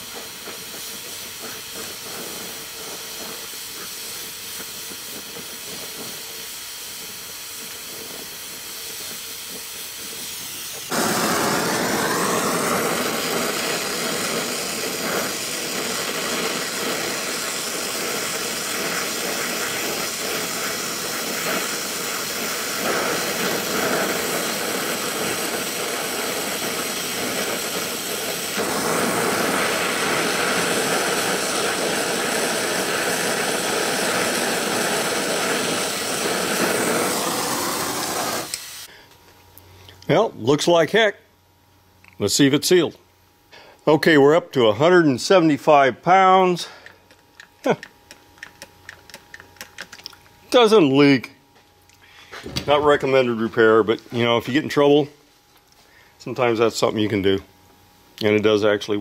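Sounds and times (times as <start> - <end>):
torch flame hissing: 0.0 - 39.0.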